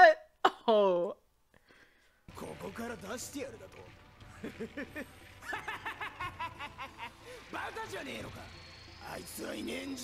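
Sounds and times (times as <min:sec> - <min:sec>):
person snickering: 0:04.3 - 0:07.4.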